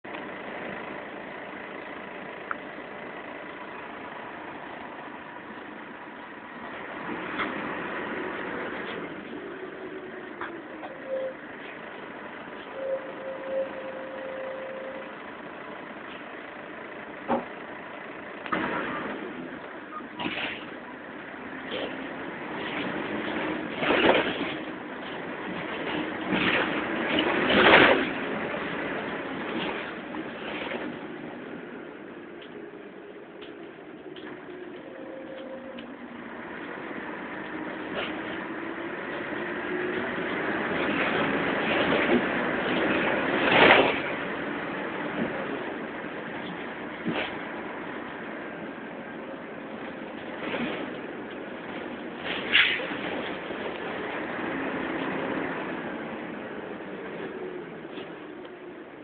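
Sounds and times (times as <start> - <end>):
bus engine and road noise: 0.0 - 59.0.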